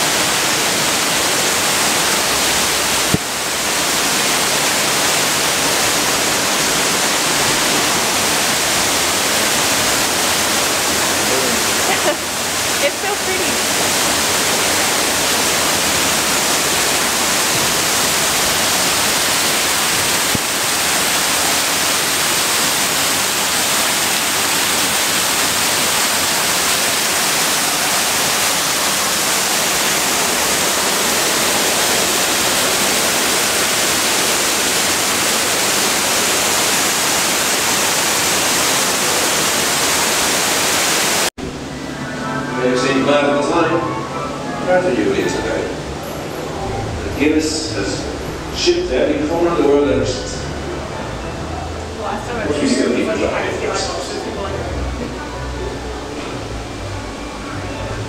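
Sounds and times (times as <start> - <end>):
water rushing down waterfall wall: 0.0 - 41.3.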